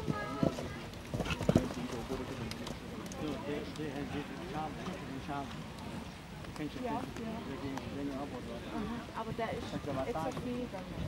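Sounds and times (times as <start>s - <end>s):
horse hoofbeats on grass: 0.0s - 2.7s.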